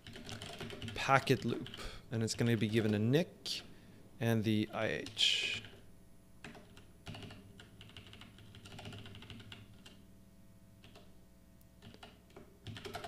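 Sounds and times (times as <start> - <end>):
computer keyboard typing: 0.0 - 3.0, 6.4 - 10.0, 10.8 - 11.1, 11.8 - 13.0.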